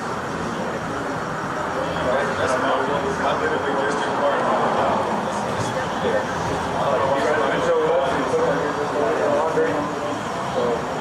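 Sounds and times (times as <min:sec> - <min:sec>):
steady background noise: 0:00.0 - 0:11.0
muffled conversation: 0:00.7 - 0:11.0.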